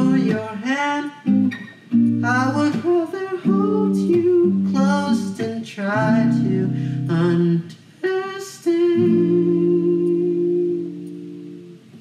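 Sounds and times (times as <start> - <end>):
young man singing: 0.0 - 1.6, 2.2 - 11.8
strummed acoustic guitar: 0.0 - 12.0.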